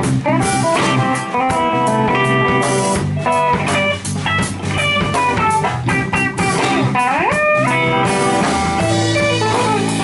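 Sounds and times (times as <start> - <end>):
bass guitar: 0.0 - 10.0
drum kit: 0.0 - 10.0
electric guitars: 0.0 - 10.0
guitar note gliding up: 0.4 - 10.0.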